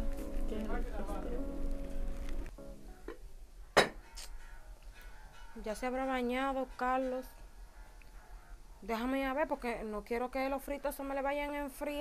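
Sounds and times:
background music: 0.0s - 3.4s.

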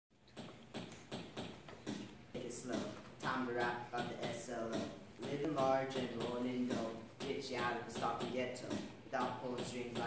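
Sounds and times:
sharp percussive beat: 0.4s - 10.0s.

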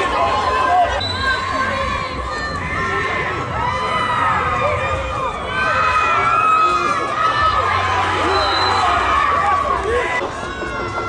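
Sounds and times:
football spectators shouting and cheering: 0.0s - 11.0s.

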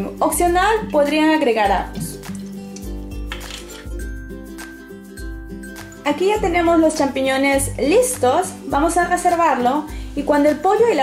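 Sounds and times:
light background music with beat: 0.0s - 11.0s.

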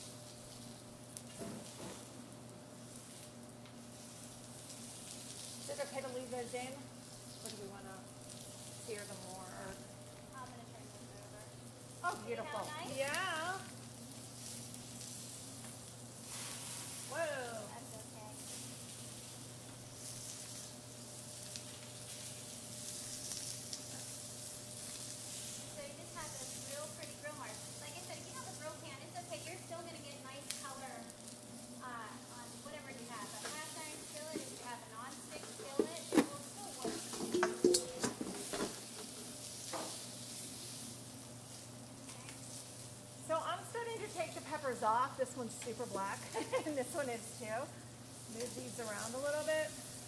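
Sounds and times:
range hood fan hum: 0.0s - 50.0s
vegetables sizzling in oil: 0.0s - 50.0s
metal tongs clacking on pans: 37.0s - 38.2s.

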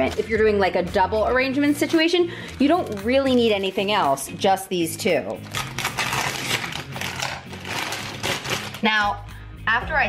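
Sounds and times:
plastic sleeve crinkling: 1.7s - 4.3s, 5.1s - 8.9s.

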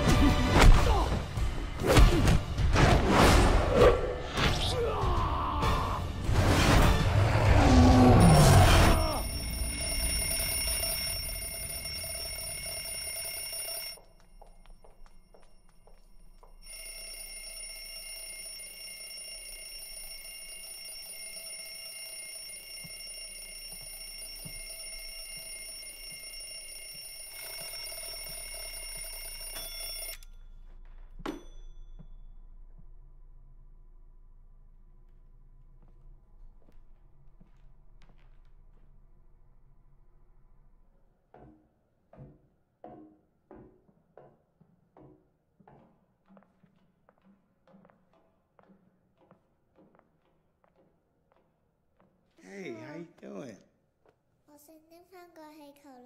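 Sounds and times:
film score music: 0.0s - 10.2s
alarm ringing: 8.2s - 30.4s.

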